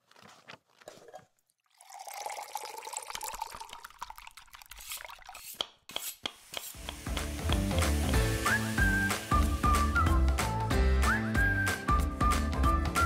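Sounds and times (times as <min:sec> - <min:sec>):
liquid pouring: 0:01.1 - 0:05.6.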